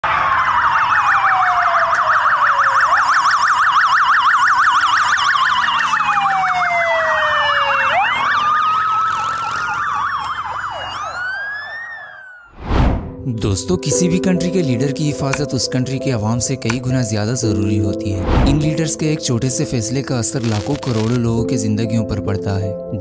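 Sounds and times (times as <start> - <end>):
police sirens wailing and yelping: 0.0 - 12.6.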